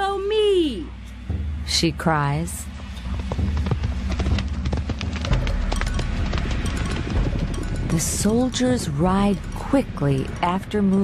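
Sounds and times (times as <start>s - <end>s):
background music: 0.0s - 11.0s
galloping horse hoof-beats: 2.6s - 10.6s.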